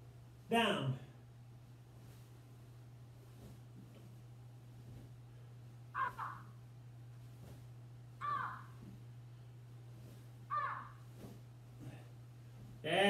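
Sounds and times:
faint low hum: 0.0 - 13.0
bird calling harshly: 5.9 - 6.6, 8.2 - 8.8, 10.5 - 11.0.

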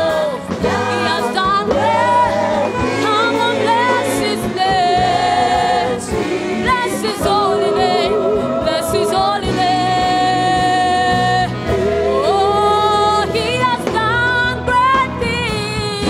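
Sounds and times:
women singing gospel: 0.0 - 15.7
band playing: 0.0 - 16.0.

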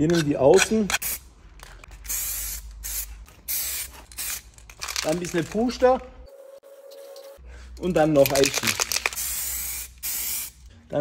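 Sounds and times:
aerosol can spraying: 9.2 - 10.6.

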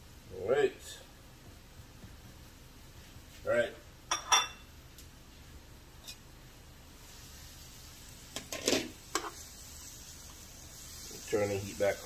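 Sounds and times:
faint pan sizzle: 0.0 - 12.0
metal cookware clinking: 4.1 - 4.7.

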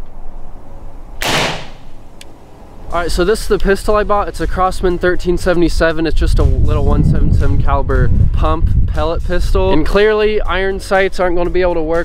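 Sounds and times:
air pistol shot: 1.2 - 2.0.

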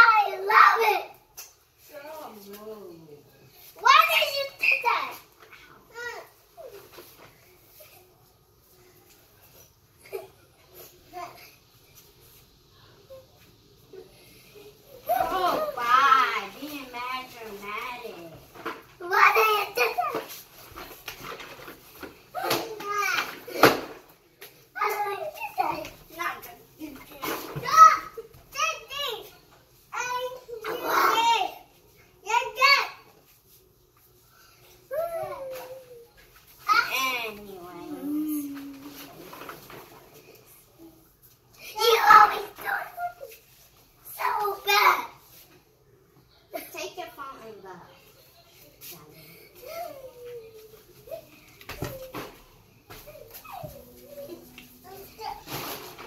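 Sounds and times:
children talking: 0.0 - 1.2, 3.7 - 6.8, 14.6 - 20.4, 24.8 - 33.1, 41.6 - 43.4.

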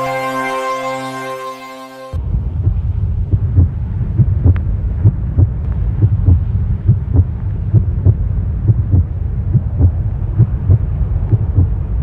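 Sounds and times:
constant low drone: 0.0 - 12.0
heartbeat-like low thumps: 2.2 - 12.0.

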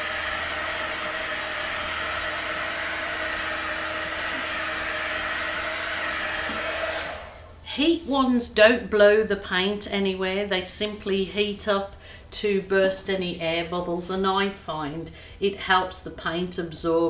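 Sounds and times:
heat gun fan whirring: 0.0 - 7.9.

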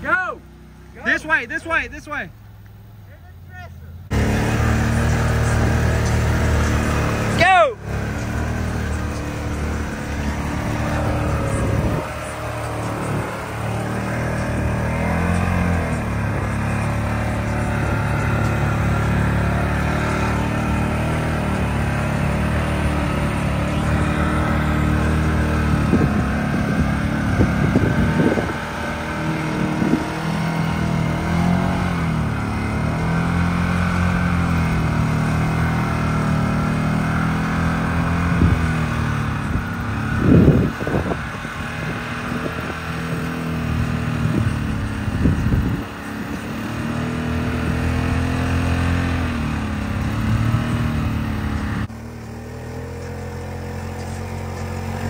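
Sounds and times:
driving through muddy water: 0.0 - 55.0
off-road vehicle engine revving: 0.0 - 55.0.

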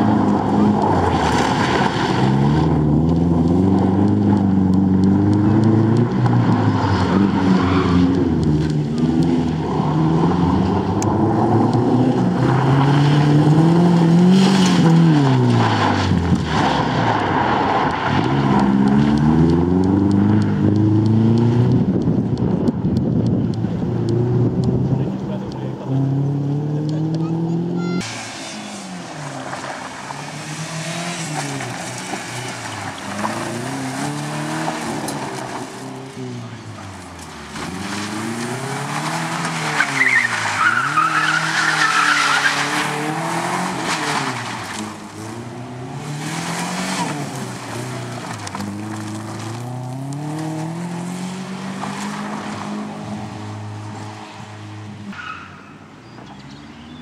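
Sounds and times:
sliding tyres and flung gravel: 0.0 - 21.7, 28.0 - 55.8
rally car engine revving: 0.0 - 55.5.

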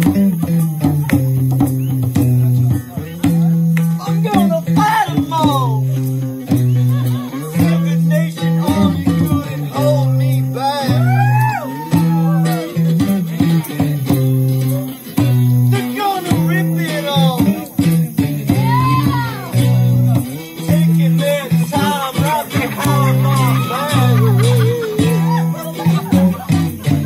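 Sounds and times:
bass guitar: 0.0 - 27.0
electric guitar: 0.0 - 27.0.

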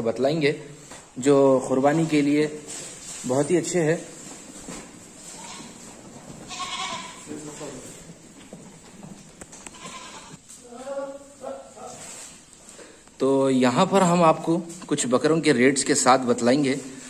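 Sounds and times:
goats bleating: 5.2 - 8.0, 9.6 - 10.4.

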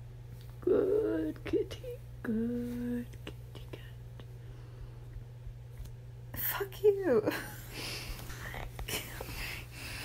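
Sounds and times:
low steady background hum: 0.0 - 10.0
person humming: 0.6 - 4.3.

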